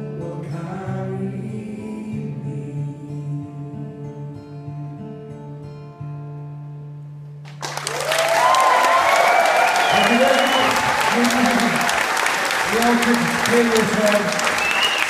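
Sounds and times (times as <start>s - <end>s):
person singing folk song: 0.0s - 5.3s
acoustic guitar: 0.0s - 7.9s
audience applauding and cheering: 7.5s - 15.0s
whistles and shouts: 8.1s - 11.9s, 14.4s - 15.0s.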